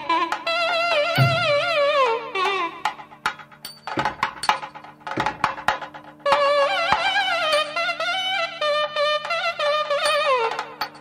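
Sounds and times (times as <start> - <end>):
drum strokes: 0.3 - 11.0.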